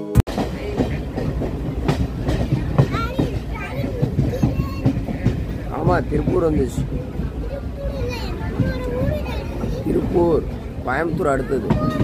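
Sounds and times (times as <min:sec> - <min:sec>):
train rumble from inside coach: 0:00.3 - 0:12.0
wheels clattering on rails: 0:00.3 - 0:12.0.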